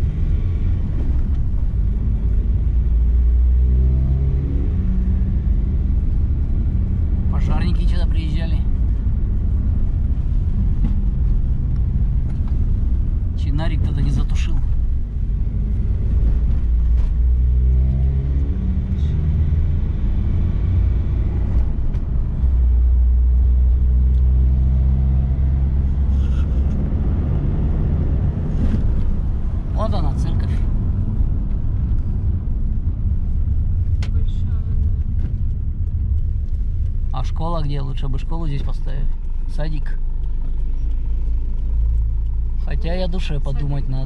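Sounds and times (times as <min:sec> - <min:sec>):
road rumble: 0:00.0 - 0:44.0
vehicle engine droning: 0:00.0 - 0:44.0.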